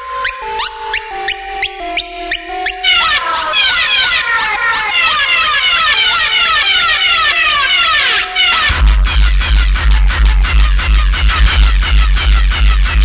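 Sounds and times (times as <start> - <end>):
stepping synth melody: 0.0 - 13.0.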